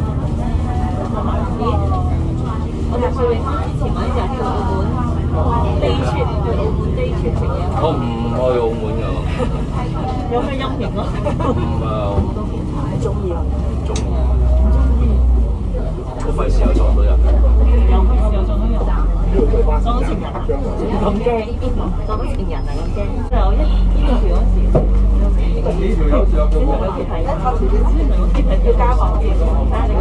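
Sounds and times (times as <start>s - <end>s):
bus diesel engine drone: 0.0s - 30.0s
people talking: 0.0s - 30.0s.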